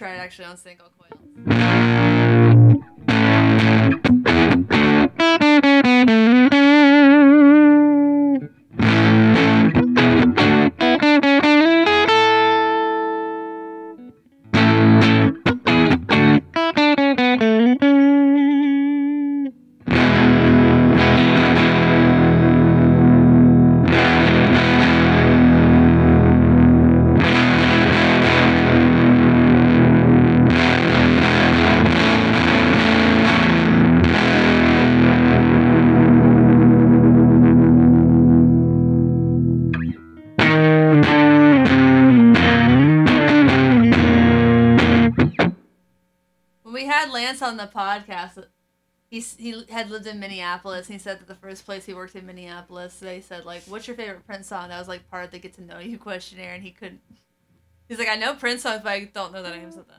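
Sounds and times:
overdriven electric guitar: 1.1 - 45.7.

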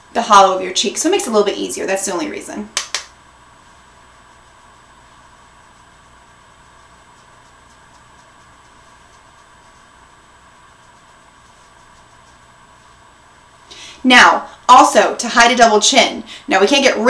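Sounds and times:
faint room tone hum and hiss: 0.0 - 17.0
makeup brush swishing: 3.7 - 13.1.

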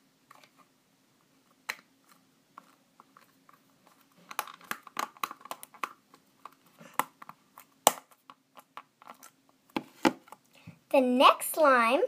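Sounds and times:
plastic tub clicks and crackles: 2.6 - 10.4.

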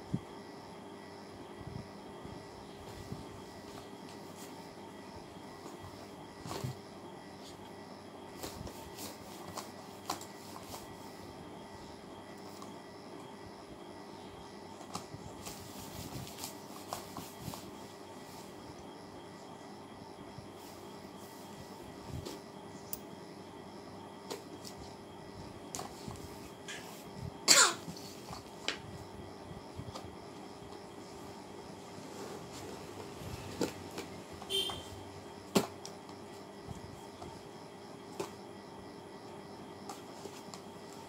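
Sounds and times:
room hum: 0.0 - 41.0
short vocal sound like cough: 27.5 - 27.9.

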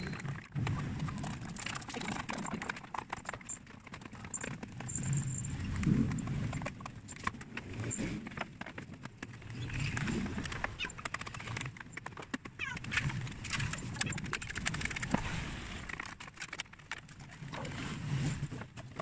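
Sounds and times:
paint flakes clicking: 8.9 - 17.4.

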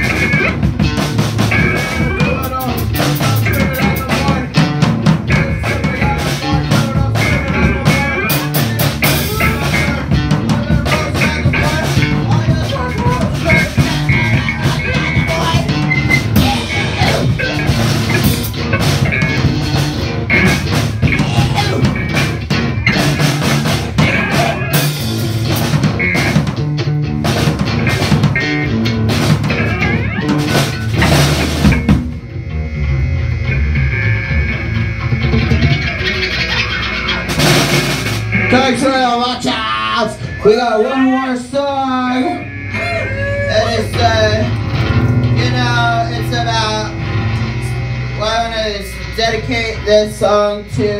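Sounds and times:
live rock band playing: 0.0 - 50.9.

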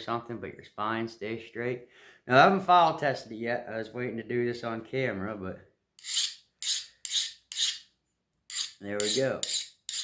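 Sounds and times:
file scraping knife blade: 6.0 - 10.0.

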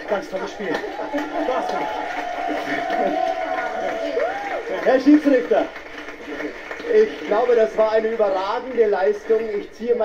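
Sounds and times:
voices cheering and calling out: 0.3 - 4.9.

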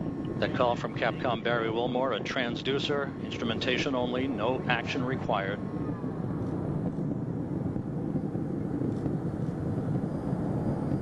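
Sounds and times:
rocket engines rumbling: 0.0 - 11.0.

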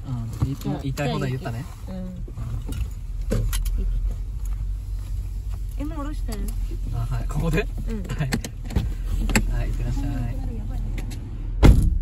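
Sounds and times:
car rumbling at low speed: 0.0 - 12.0.

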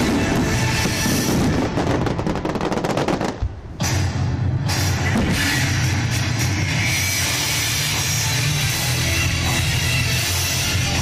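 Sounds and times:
fireworks crackling and banging: 0.0 - 6.1
loud rock music with drums: 3.7 - 11.0.

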